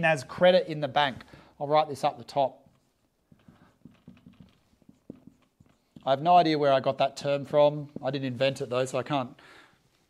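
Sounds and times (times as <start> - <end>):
marker pen writing on whiteboard: 1.6 - 8.8.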